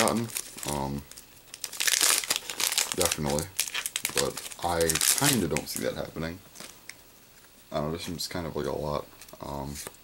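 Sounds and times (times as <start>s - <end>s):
foil wrapper crinkling: 0.0s - 6.8s.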